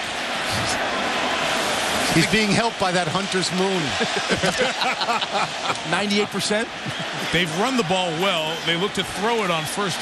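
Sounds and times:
stadium crowd noise: 0.0s - 10.0s
men laughing and talking: 2.1s - 10.0s.

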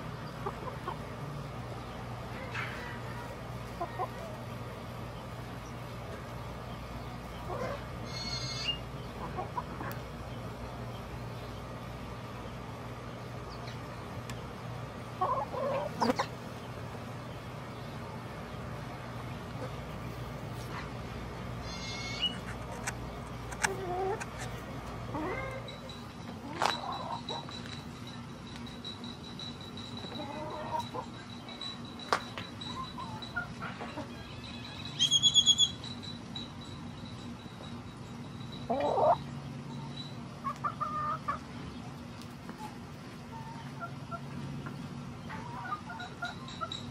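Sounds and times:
chickens clucking: 0.0s - 37.2s, 37.9s - 46.9s
steady low hum: 0.0s - 46.9s
small bird calling: 6.8s - 10.0s, 21.6s - 25.9s, 32.6s - 36.0s.

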